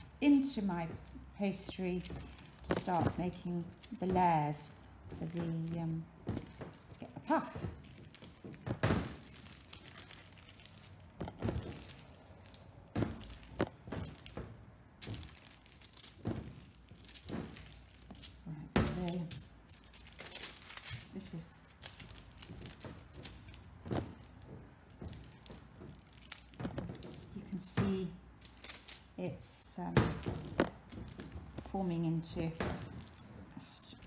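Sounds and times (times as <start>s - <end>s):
paper crinkling: 0.2s - 27.4s, 28.3s - 29.1s.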